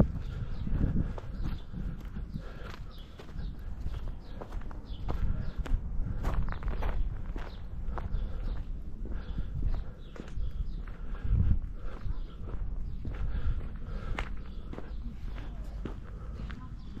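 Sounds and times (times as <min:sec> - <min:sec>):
footsteps walking outdoors: 0:00.0 - 0:17.0.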